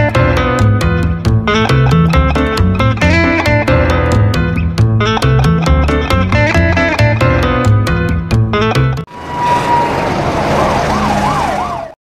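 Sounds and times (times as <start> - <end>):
road noise: 6.4 - 12.0
steady siren tone: 9.1 - 12.0
wailing siren: 9.1 - 12.0.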